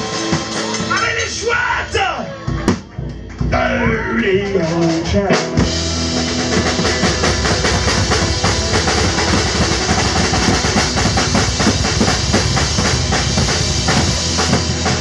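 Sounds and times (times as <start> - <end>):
live band music: 0.0 - 15.0
marching bass drum beating: 2.5 - 15.0
electric guitar: 4.9 - 15.0
marching snare drum: 6.4 - 15.0.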